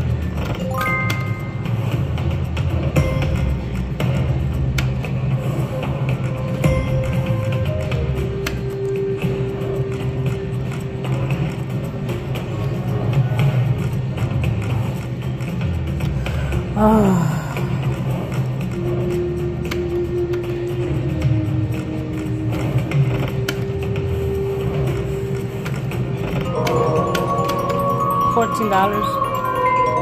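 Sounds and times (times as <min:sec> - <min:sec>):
slot machine game music: 0:00.5 - 0:02.2, 0:02.9 - 0:04.0, 0:05.0 - 0:14.2, 0:18.8 - 0:30.0
win chime: 0:00.6 - 0:01.6, 0:26.5 - 0:30.0.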